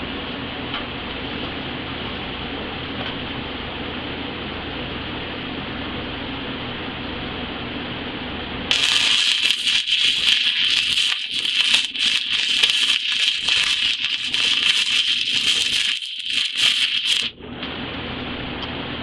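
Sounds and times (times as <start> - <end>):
welding arc crackling and hissing: 8.7 - 17.3.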